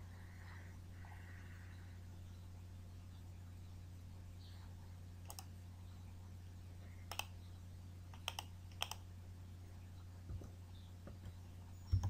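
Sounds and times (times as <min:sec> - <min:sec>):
steady low hum: 0:00.0 - 0:12.0
computer mouse button clicking: 0:08.2 - 0:09.0.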